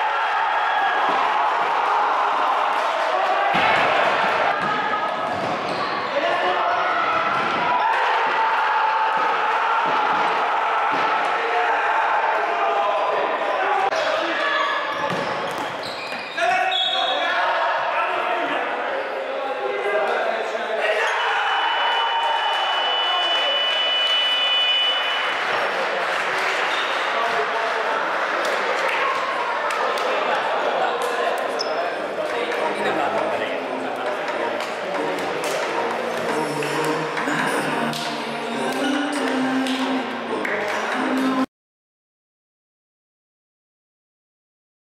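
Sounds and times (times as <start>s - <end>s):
babble of echoing voices: 25.4s - 41.5s.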